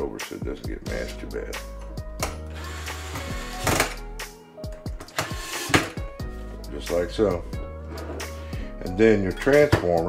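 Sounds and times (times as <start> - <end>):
cordless screwdriver running: 2.5 - 4.0, 5.1 - 5.8.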